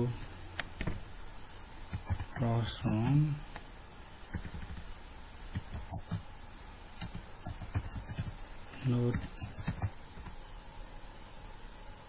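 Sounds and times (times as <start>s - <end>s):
faint steady hum: 0.0s - 12.0s
keyboard keys clicking: 4.3s - 4.8s.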